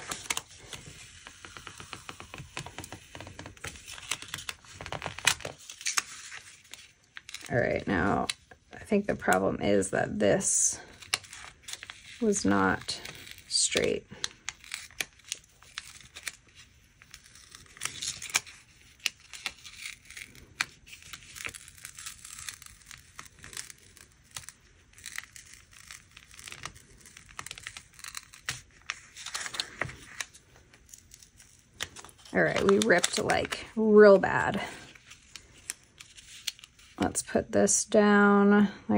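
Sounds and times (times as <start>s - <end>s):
paper crinkling and tearing: 0.0s - 8.5s, 10.8s - 37.1s.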